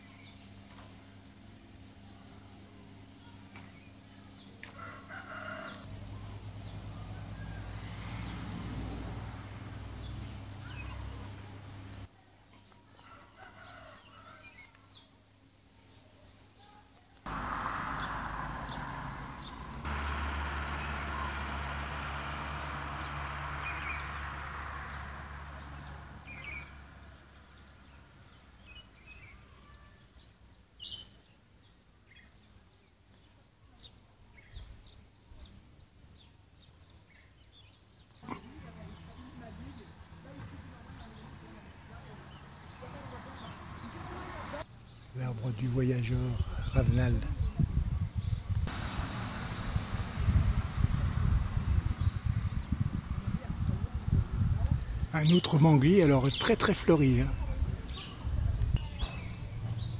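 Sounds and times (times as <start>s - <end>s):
small birds chirping: 0.0s - 59.9s
rooster crowing: 4.6s - 6.2s, 7.0s - 9.7s, 13.0s - 14.8s, 17.3s - 27.8s
rumbling noise with low hum: 46.4s - 55.2s.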